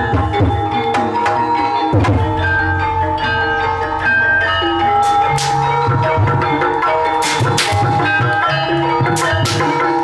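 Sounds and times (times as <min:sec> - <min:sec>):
bell-like tuned percussion: 0:00.0 - 0:10.0
hand drum playing: 0:00.0 - 0:10.0.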